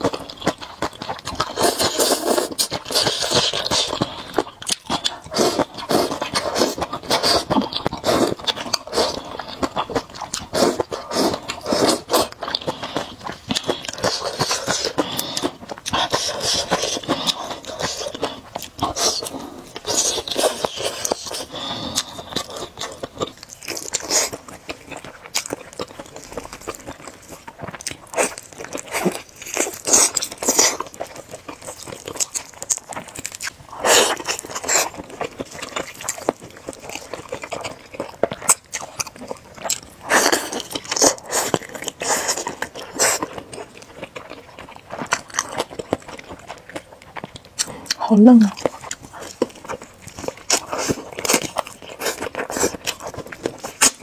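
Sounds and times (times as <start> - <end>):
wet open-mouthed chewing: 0.0 - 54.0
slurping noodles: 1.4 - 9.8, 10.4 - 23.0, 40.0 - 43.4.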